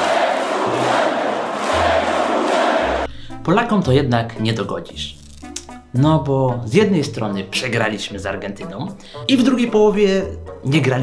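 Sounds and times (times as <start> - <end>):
arena crowd cheering: 0.0 - 3.1
low bass background music: 2.8 - 11.0.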